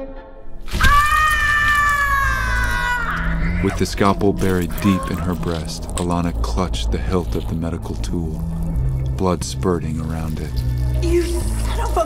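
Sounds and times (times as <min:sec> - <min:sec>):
woman screaming in pain: 0:00.7 - 0:03.5.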